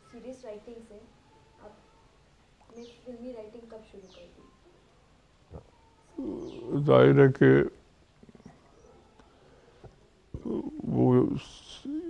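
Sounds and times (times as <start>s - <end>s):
man speaking in a low voice: 6.2s - 7.8s, 10.4s - 12.0s.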